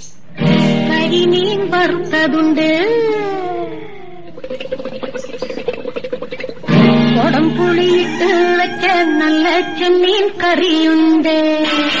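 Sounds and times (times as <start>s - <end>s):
steady held tone: 7.1s - 10.6s
person singing: 7.2s - 11.0s.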